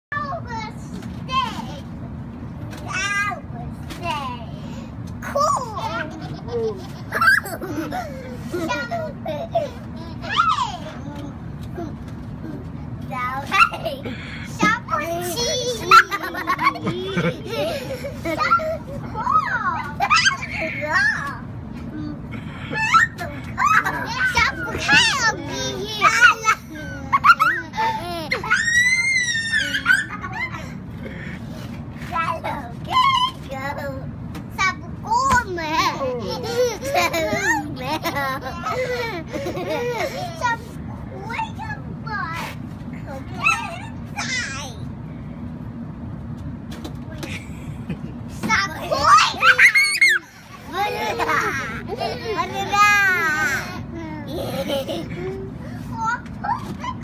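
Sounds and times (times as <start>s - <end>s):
girls calling and squealing: 13.4s - 21.6s, 22.2s - 34.1s, 48.3s - 57.0s
child crying with falling pitch: 22.6s - 30.7s, 49.0s - 54.6s.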